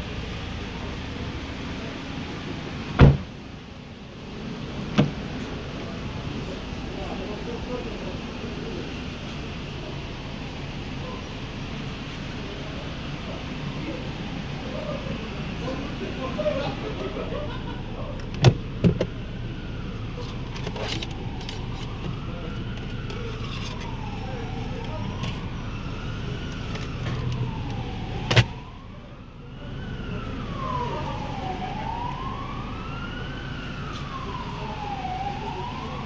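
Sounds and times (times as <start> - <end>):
siren wailing: 19.1 - 36.0.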